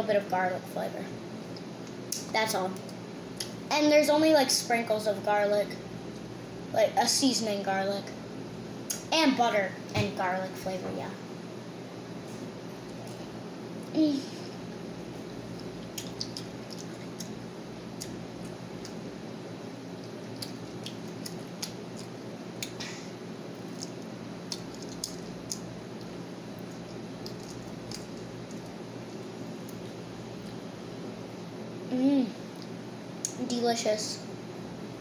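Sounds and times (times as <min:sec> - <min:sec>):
low background hum: 0:00.0 - 0:35.0
child chewing with wet mouth clicks: 0:15.4 - 0:17.4, 0:18.0 - 0:19.1, 0:20.0 - 0:22.9, 0:23.5 - 0:30.6.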